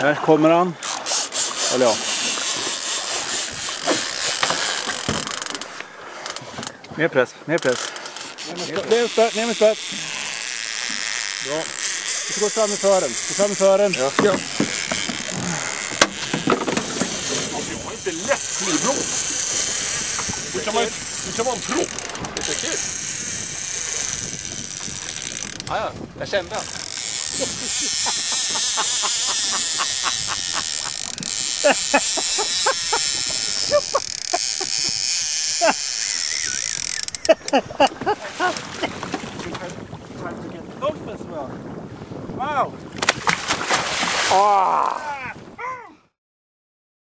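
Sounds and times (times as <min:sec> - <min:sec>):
fishing reel drag screaming: 0:00.8 - 0:06.4, 0:07.6 - 0:16.4, 0:17.1 - 0:25.7, 0:26.5 - 0:37.6.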